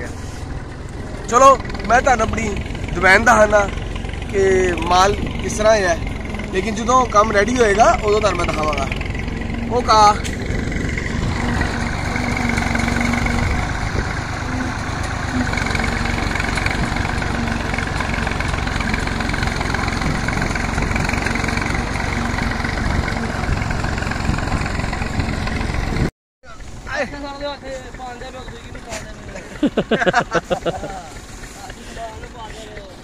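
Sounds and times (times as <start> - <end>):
engine running steadily: 0.0 - 33.0.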